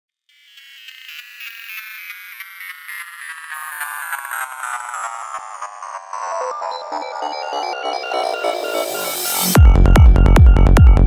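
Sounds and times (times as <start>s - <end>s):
pulsing high synthesizer: 0.3s - 11.0s.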